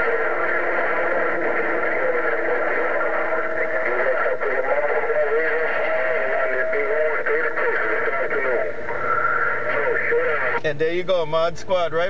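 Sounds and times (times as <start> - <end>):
radio static hiss: 0.0 - 12.0
warbling radio voice: 0.0 - 12.0.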